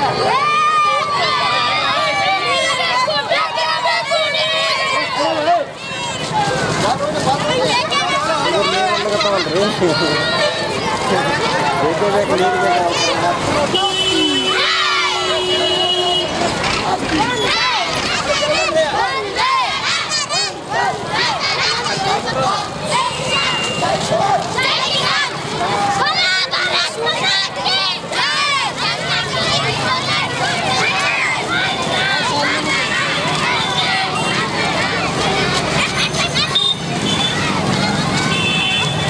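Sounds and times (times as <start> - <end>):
children shouting and cheering: 0.0 - 39.0.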